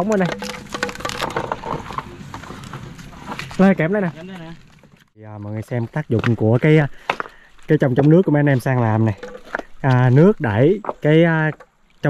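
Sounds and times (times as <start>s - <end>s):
wooden knocks and clacks: 0.0s - 3.4s, 7.1s - 11.7s.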